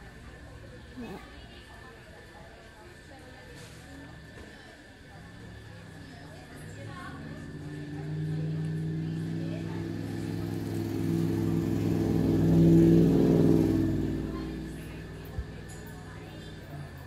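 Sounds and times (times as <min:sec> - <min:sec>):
motor vehicle passing by: 0:05.1 - 0:17.0.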